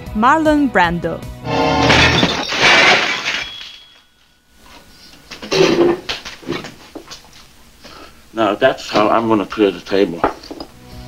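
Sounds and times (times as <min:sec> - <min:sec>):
crockery clattering: 0:01.5 - 0:04.1, 0:05.4 - 0:06.1
dishes and glasses smashing: 0:01.5 - 0:04.1.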